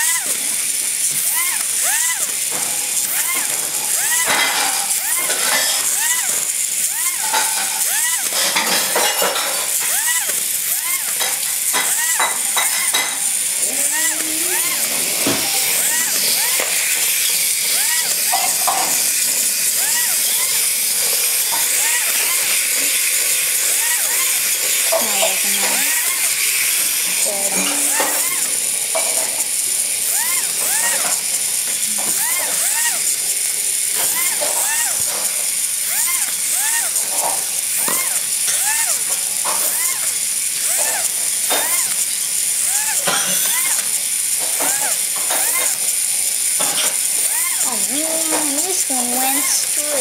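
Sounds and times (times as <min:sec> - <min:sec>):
toy robot motors buzzing: 0:00.0 - 0:50.0.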